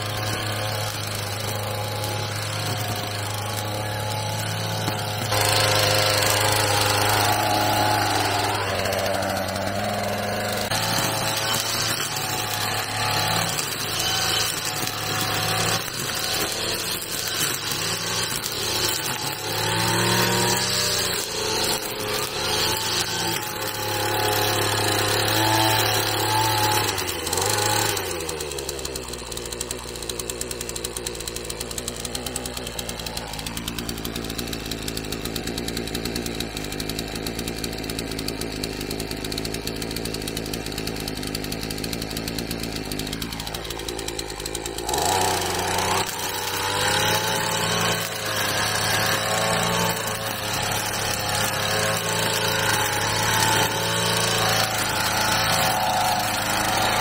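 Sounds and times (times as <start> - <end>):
brush cutter engine running: 0.0 - 57.0.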